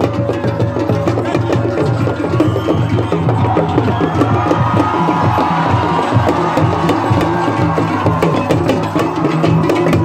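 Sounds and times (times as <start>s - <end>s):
drum-led music: 0.0s - 10.0s
large crowd noise: 0.0s - 10.0s.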